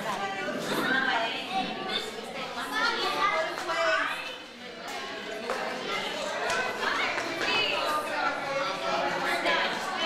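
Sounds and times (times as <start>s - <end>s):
children chattering and calling out: 0.0s - 10.0s.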